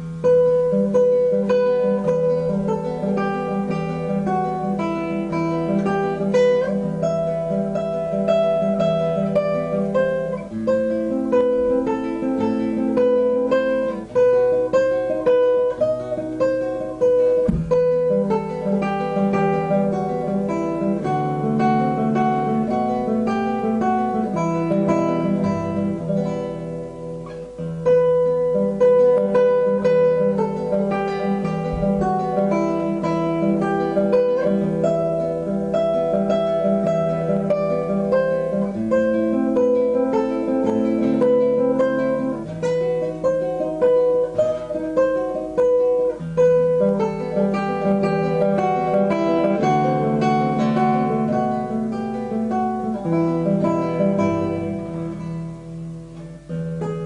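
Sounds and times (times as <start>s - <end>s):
acoustic guitar music: 0.0s - 57.0s.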